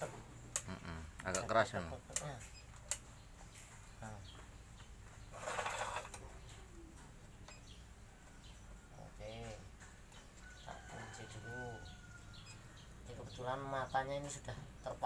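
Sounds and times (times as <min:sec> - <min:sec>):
scraping rustle of parts: 0:05.3 - 0:06.2.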